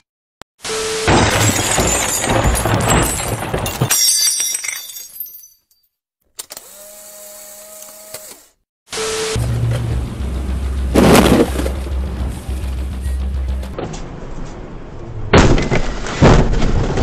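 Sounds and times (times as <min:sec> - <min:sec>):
debris crashing: 0:01.1 - 0:05.4, 0:10.8 - 0:12.6, 0:15.2 - 0:17.0
glass shattering: 0:01.1 - 0:05.9.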